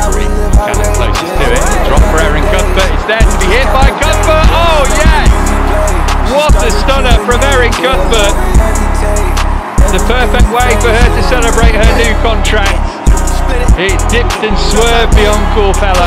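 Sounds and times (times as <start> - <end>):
deep heavy bass beat: 0.0 - 16.0
person singing: 0.0 - 16.0
ticking hi-hats: 0.0 - 16.0.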